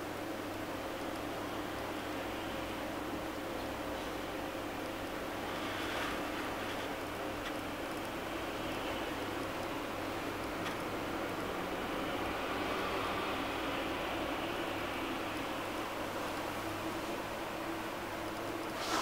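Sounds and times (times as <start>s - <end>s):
room hum and hiss: 0.0s - 19.0s
brush swishing across paper: 18.7s - 19.0s.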